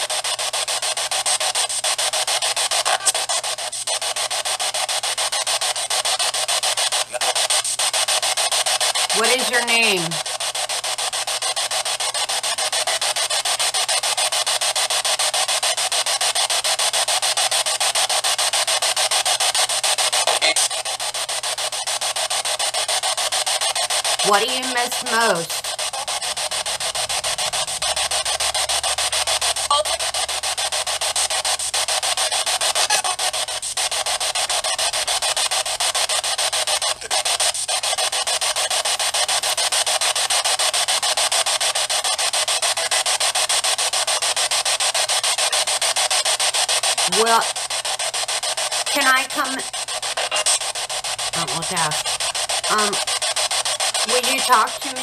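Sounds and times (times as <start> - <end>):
chopped radio static: 0.0 - 55.0.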